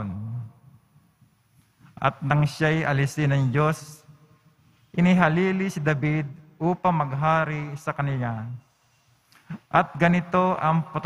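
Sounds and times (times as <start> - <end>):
man reading aloud: 0.0 - 0.6, 1.9 - 4.2, 4.9 - 8.6, 9.5 - 11.0.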